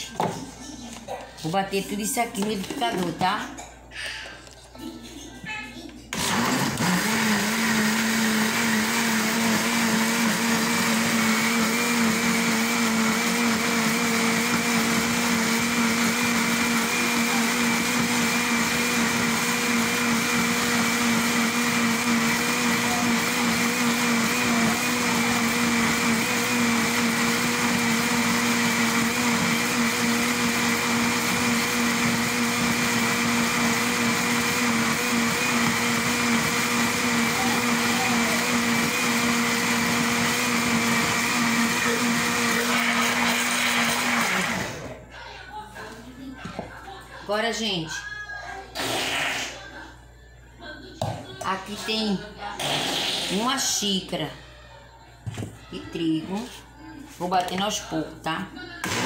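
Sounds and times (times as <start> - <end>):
blender motor running: 6.2 - 44.9.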